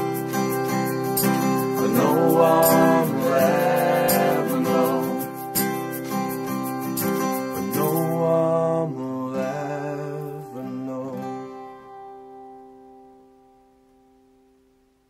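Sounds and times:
acoustic guitars strumming chords: 0:00.0 - 0:14.6.

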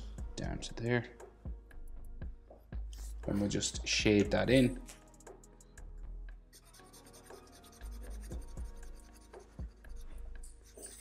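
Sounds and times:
soft background music: 0:00.0 - 0:11.0
marker scratching on paper: 0:06.5 - 0:11.0.

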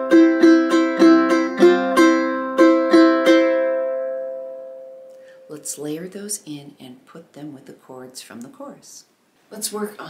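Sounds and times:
ukulele strumming: 0:00.0 - 0:05.7.

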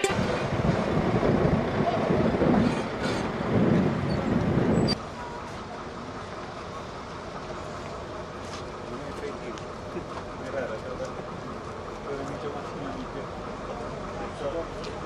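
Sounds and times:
wind buffeting microphone: 0:00.1 - 0:05.0.

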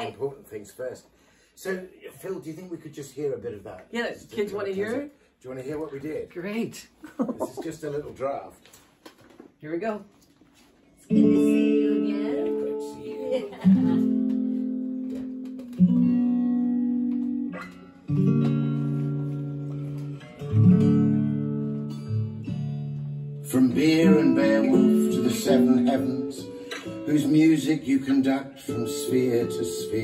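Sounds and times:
guitar chords over speakers: 0:11.1 - 0:30.0.

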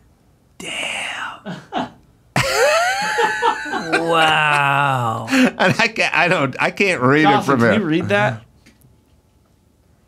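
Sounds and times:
men laughing loudly: 0:01.7 - 0:06.4.

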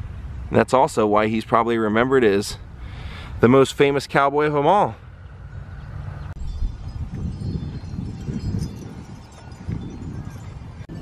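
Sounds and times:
wind on microphone: 0:06.1 - 0:11.0
metal wind chimes tinkling: 0:06.4 - 0:11.0.

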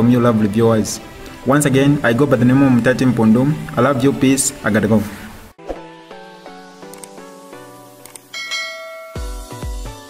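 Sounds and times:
mouse-click sound effects: 0:06.8 - 0:07.2
notification bell chime: 0:08.3 - 0:09.8
bell-like music notes: 0:08.3 - 0:10.0.

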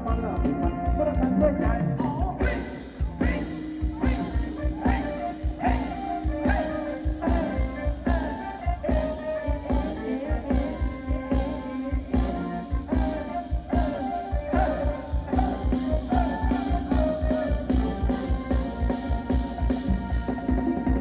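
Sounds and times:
live band dance music: 0:00.0 - 0:21.0.

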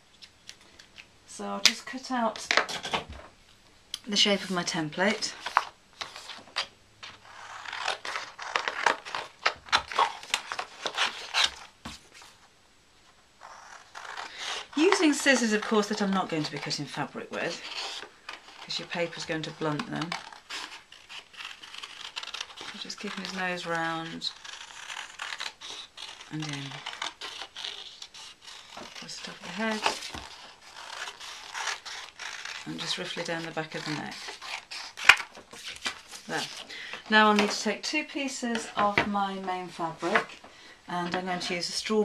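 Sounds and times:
scissors snipping paper: 0:13.8 - 0:36.6
paper rustling: 0:14.0 - 0:37.8.

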